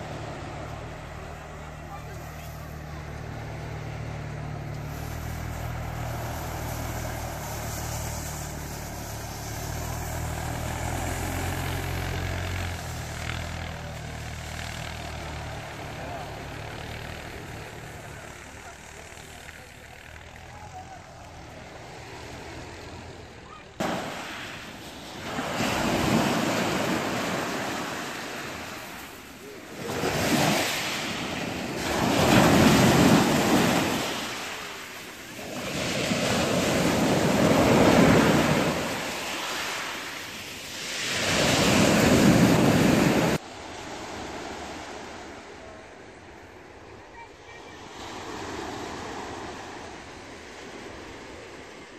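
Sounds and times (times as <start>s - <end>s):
vehicle engine running: 0.0s - 24.8s
waves breaking on pebbles: 1.7s - 20.5s, 23.7s - 45.2s.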